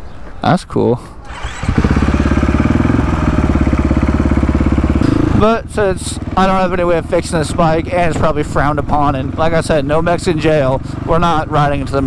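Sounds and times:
dirt bike engine revving: 1.3 - 8.3.

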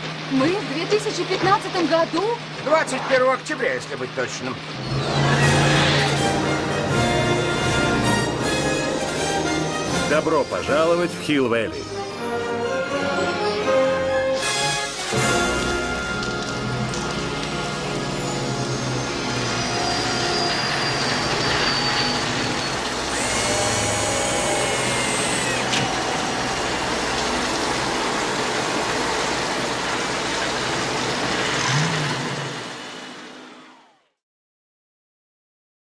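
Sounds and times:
orchestral score: 4.8 - 32.6
hover jets hissing: 17.5 - 31.6
whines falling in pitch: 18.2 - 30.3.

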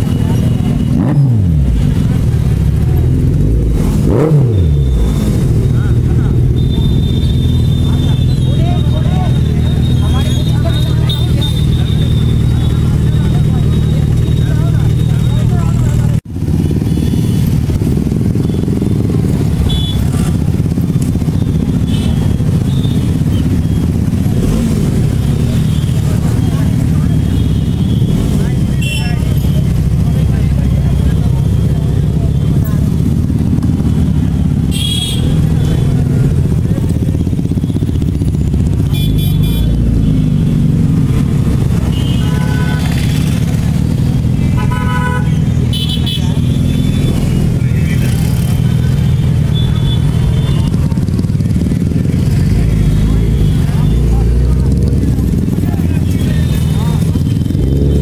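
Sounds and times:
motorcycle engines rumbling: 0.0 - 58.0
vehicle horn toots: 6.5 - 9.0, 19.6 - 20.2, 34.7 - 35.9, 38.8 - 40.5, 41.8 - 43.4, 44.5 - 47.3, 49.5 - 50.8.

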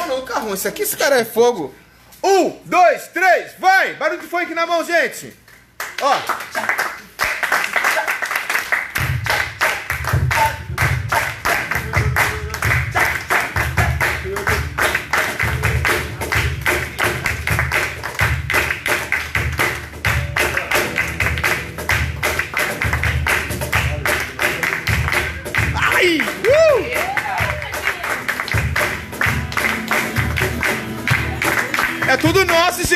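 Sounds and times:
group hand-clapping: 5.3 - 32.9
deep thumping beat: 9.0 - 18.8, 19.4 - 27.8
strummed acoustic guitar: 10.2 - 32.8.

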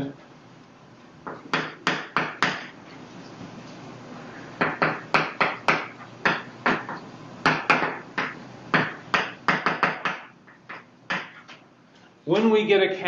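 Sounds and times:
chalk tapping on blackboard: 4.6 - 11.6.

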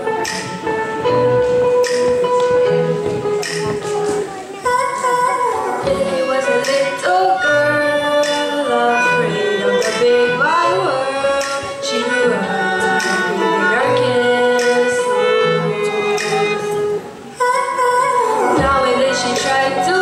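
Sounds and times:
violin: 0.0 - 20.0
girl singing: 4.0 - 20.0.

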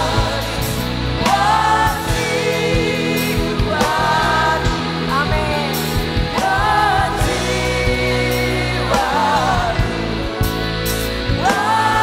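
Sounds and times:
backing singers: 0.0 - 12.0
bass: 0.0 - 12.0
electric guitar: 0.0 - 12.0
woman singing: 1.2 - 10.0, 11.4 - 12.0.

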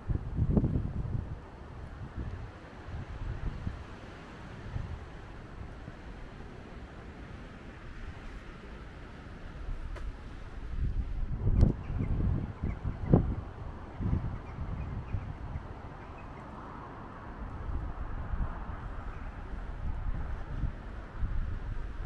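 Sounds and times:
wind buffeting microphone: 0.0 - 22.0.

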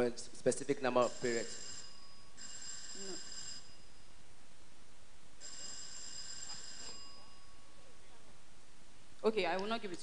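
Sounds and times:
electric bell ringing: 1.0 - 4.2, 5.4 - 7.8.

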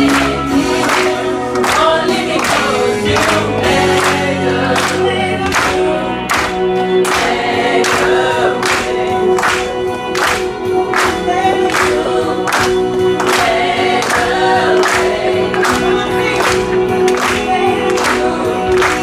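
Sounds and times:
female vocal group singing gospel: 0.0 - 9.7, 10.9 - 19.0.

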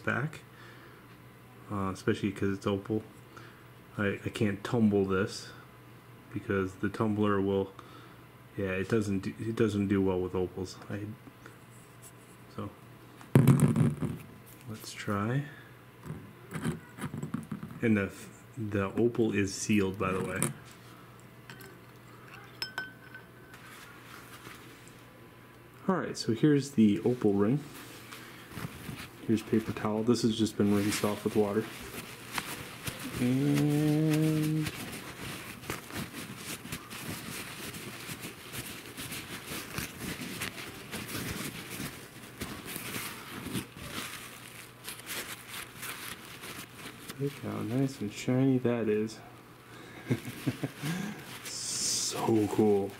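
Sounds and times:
faint room noise: 0.0 - 52.9
light clinks on glass jar: 22.6 - 23.3
paper towel rustling: 23.6 - 25.0, 26.8 - 48.6, 50.0 - 52.9.

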